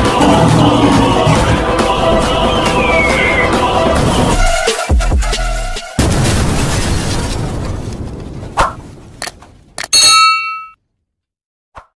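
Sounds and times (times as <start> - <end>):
bright bell ding: 9.8 - 10.8.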